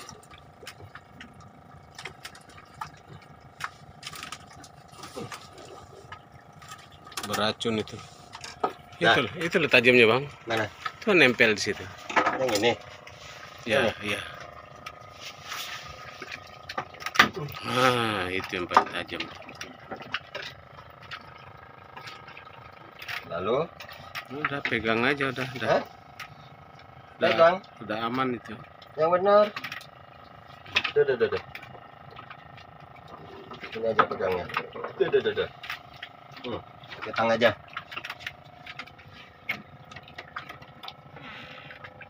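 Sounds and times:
faint steady hum: 0.0s - 42.0s.

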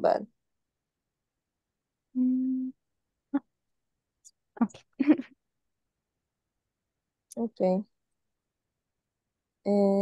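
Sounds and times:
person humming: 2.2s - 2.7s.

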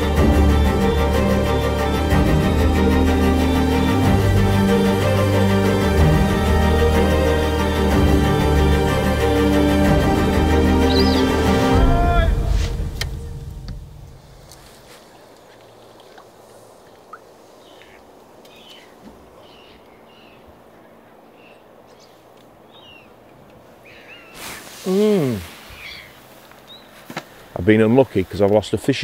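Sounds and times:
faint high bird chirps: 10.8s - 11.4s, 25.7s - 27.0s.

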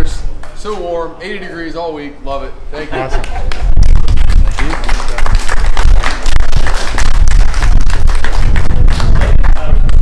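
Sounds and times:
audience clapping: 3.2s - 9.8s
low rumble: 3.5s - 10.0s.

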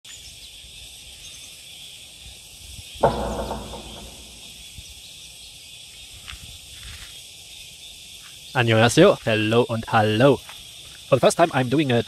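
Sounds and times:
insects chorus: 0.1s - 12.0s.

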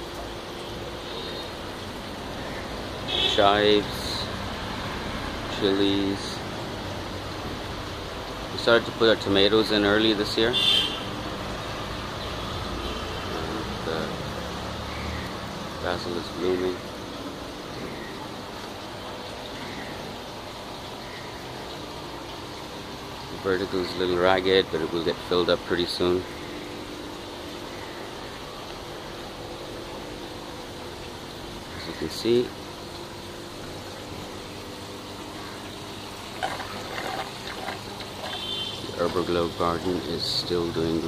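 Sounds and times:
water flowing through gravel: 17.8s - 41.0s
faint irregular sounds: 36.2s - 40.0s.

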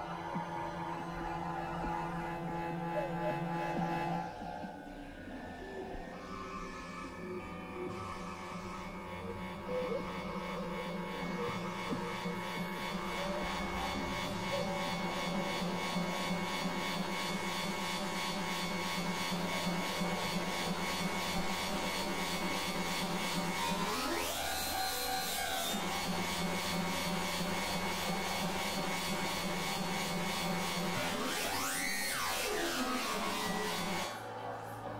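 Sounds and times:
synthesizer drone: 0.0s - 34.9s
buzzing noisy texture: 0.1s - 34.9s.

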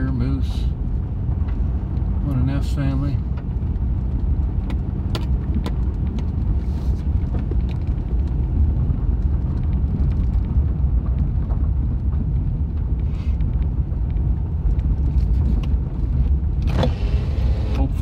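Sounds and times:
vehicle rumble on gravel: 0.0s - 18.0s.

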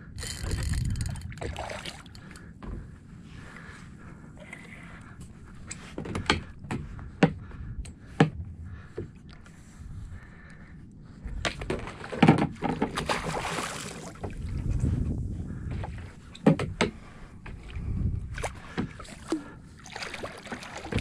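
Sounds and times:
water rumbling against hull: 0.0s - 21.0s
fish thrashing and splashing: 11.9s - 14.4s, 19.0s - 21.0s.

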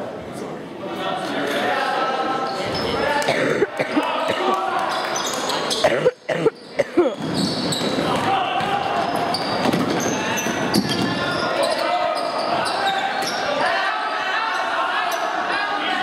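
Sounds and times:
spectators' voices echoing in gym: 0.0s - 16.0s
loud shouts: 7.9s - 16.0s.

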